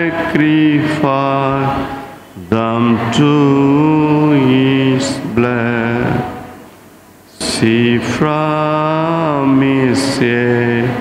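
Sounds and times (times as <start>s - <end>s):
man singing a slow hymn: 0.0s - 6.6s, 7.3s - 11.0s.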